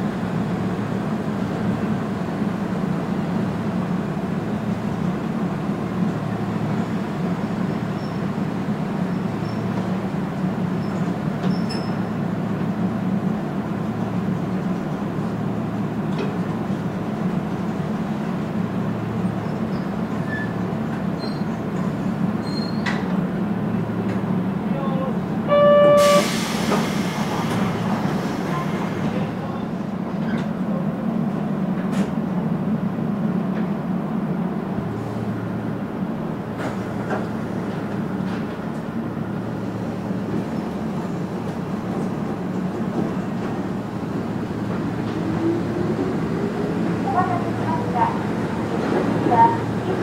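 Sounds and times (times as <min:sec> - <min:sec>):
train equipment humming: 0:00.0 - 0:50.0
short horn tone: 0:25.5 - 0:26.6
air hissing: 0:25.9 - 0:29.1.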